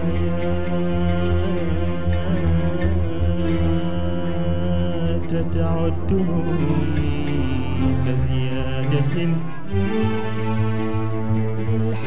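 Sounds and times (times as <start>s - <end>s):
violin section playing: 0.0s - 12.0s.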